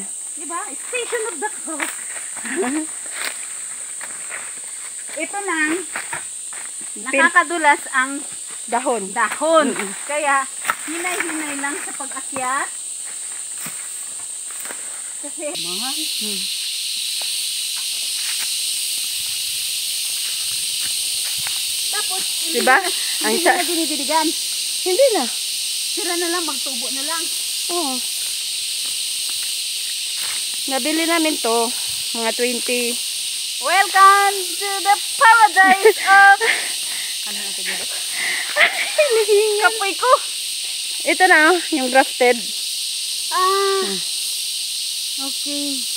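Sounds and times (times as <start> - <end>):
people talking: 0.0 - 2.9, 5.2 - 5.9, 6.9 - 12.7, 15.2 - 16.5, 21.9 - 25.3, 26.0 - 28.0, 30.7 - 33.0, 33.6 - 40.2, 41.0 - 42.5, 43.3 - 44.0, 45.2 - 45.8
cicadas droning: 0.0 - 45.9
high-pitched hiss: 0.0 - 45.9
footsteps on dry leaves: 0.8 - 7.0, 8.3 - 12.2, 12.9 - 15.2, 17.0 - 23.2, 28.0 - 31.9.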